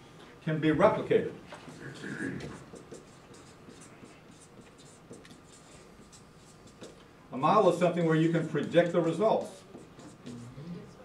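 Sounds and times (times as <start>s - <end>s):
marker pen writing on paper: 1.5s - 7.1s, 8.3s - 10.6s.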